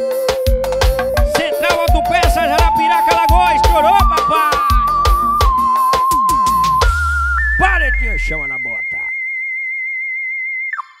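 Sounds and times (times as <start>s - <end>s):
synthesizer lead note with vibrato: 1.2s - 8.6s.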